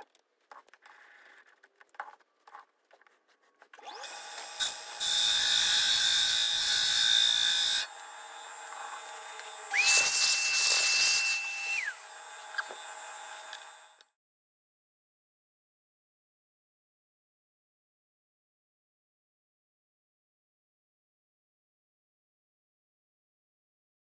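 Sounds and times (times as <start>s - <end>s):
lathe tool cutting metal: 3.9s - 14.0s.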